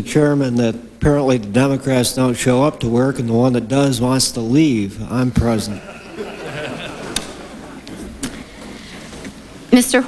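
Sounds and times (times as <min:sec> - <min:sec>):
low murmur: 0:04.4 - 0:09.6.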